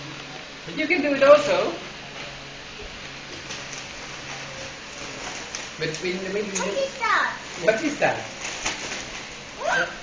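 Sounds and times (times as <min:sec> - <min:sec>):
faint constant hum: 0:00.0 - 0:10.0.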